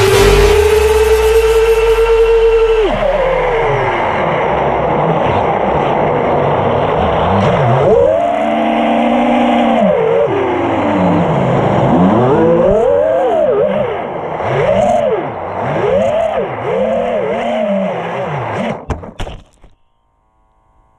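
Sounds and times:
drone motors whining: 0.0 - 19.8.

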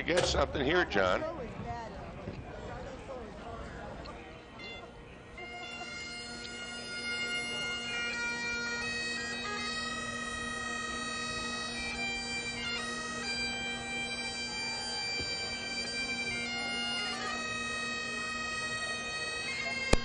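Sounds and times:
bagpipes playing: 4.3 - 20.0.

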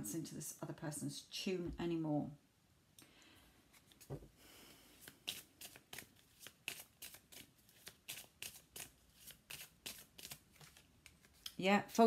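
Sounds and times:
cards being shuffled by hand: 3.7 - 4.2, 4.9 - 11.6.

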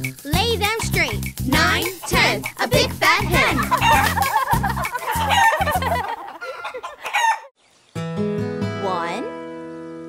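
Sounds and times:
children's song: 0.0 - 5.3
cartoon hen clucking and crowing: 1.5 - 7.5.

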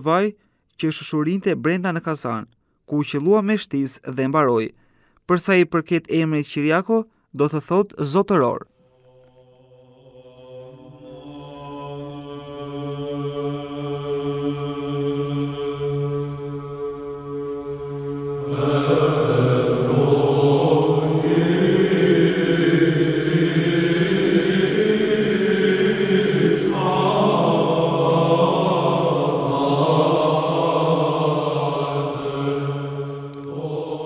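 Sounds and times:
choral chanting: 9.0 - 34.0
held drone: 15.5 - 34.0.

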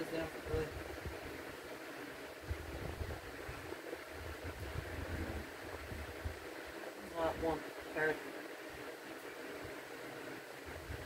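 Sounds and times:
faint room noise hiss: 0.0 - 11.0
soft low thumps: 2.4 - 6.7.

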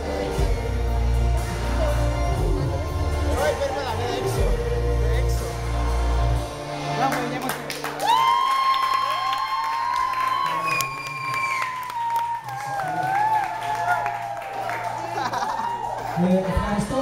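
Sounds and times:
audience clapping: 7.0 - 17.0.

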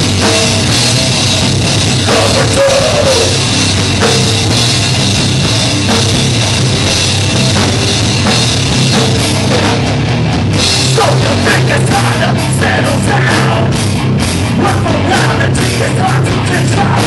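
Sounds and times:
electric guitars: 0.0 - 17.0
pounding drum kit: 0.0 - 17.0.

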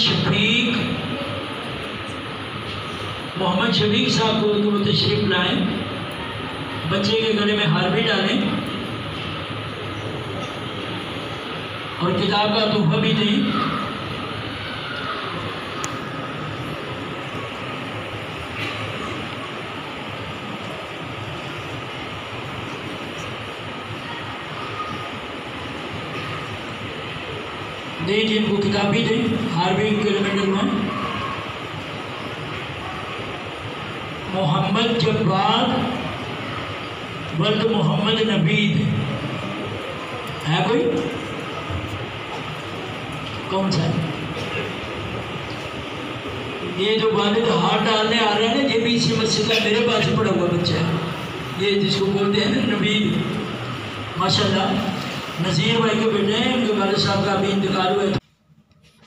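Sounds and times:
murmur of crowded hall: 0.0 - 59.0.

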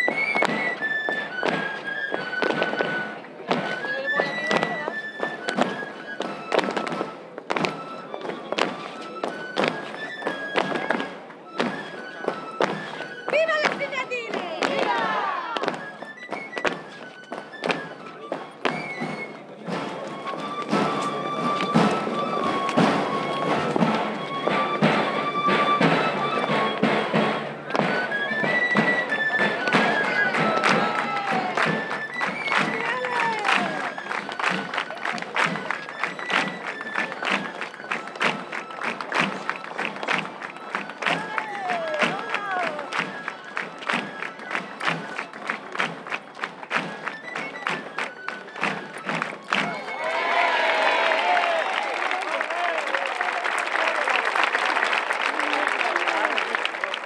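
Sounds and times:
high flute melody: 0.0 - 57.0
drum strokes: 18.6 - 33.8.

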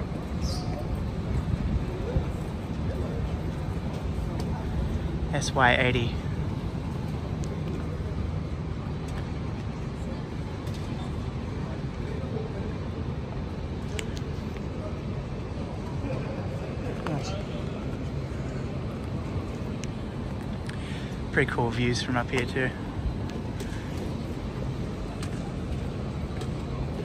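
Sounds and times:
faint voices of passers-by: 0.0 - 27.0
low hum of traffic: 0.0 - 27.0.

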